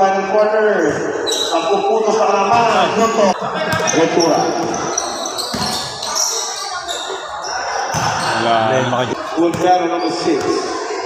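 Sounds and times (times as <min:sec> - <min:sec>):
basketball bouncing on hard court: 0:04.6 - 0:06.1, 0:07.9 - 0:08.3.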